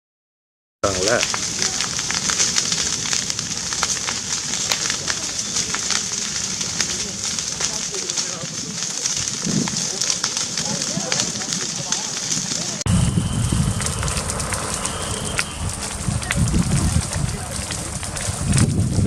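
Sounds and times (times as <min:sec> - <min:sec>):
fire roaring with crackles: 0:00.8 - 0:19.0.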